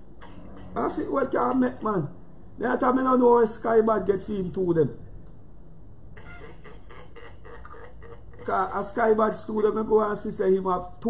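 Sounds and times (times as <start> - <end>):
faint broken sounds: 0.0 - 1.9, 6.1 - 9.7
low steady hum: 0.0 - 11.0.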